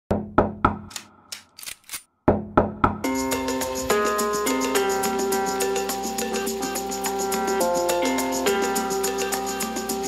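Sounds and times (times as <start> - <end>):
dancehall track with steady beat: 3.0 - 10.0.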